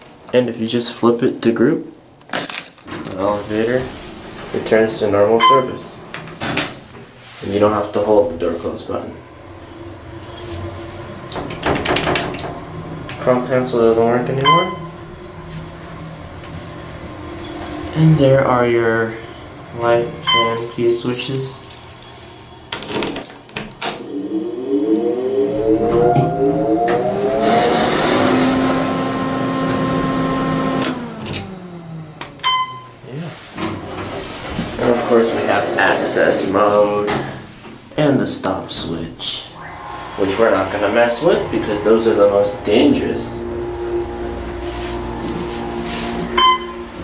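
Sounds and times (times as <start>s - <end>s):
ventilation fan motor whine: 0.0s - 47.0s
elevator humming: 2.8s - 32.6s, 38.8s - 47.0s
elevator arrival chime: 5.4s - 5.8s, 14.4s - 15.3s, 20.2s - 21.3s, 24.0s - 28.0s, 39.6s - 47.0s.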